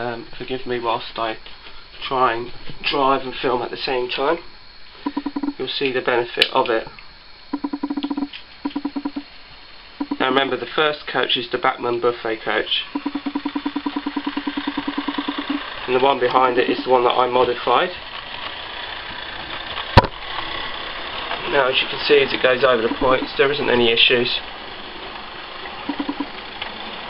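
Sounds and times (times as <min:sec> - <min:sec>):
model train rapid ticking rattle: 0:12.9 - 0:27.0.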